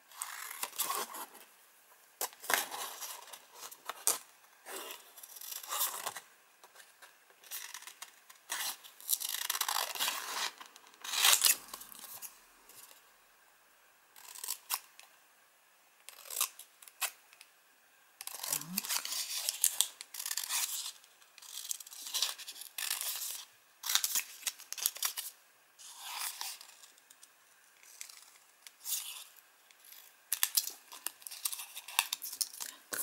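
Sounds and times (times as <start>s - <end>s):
scissors cutting stiff paper: 18.2s - 25.2s.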